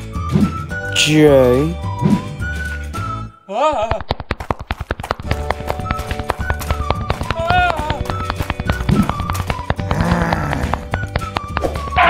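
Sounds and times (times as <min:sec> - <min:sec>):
upbeat background music: 0:00.0 - 0:03.4, 0:05.2 - 0:12.0
cartoon tapping footsteps: 0:03.9 - 0:12.0.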